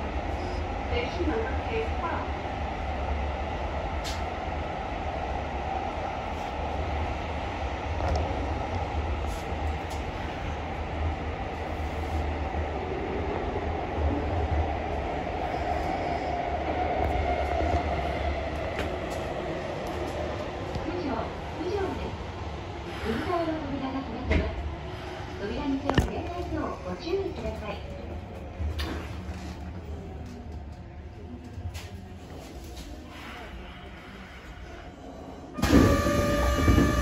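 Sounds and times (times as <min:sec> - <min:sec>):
train wheels rumbling: 0:32.8 - 0:37.0.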